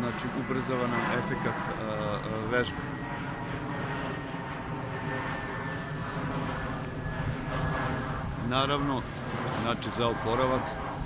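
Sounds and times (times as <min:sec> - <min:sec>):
aircraft drone overhead: 0:00.0 - 0:11.0.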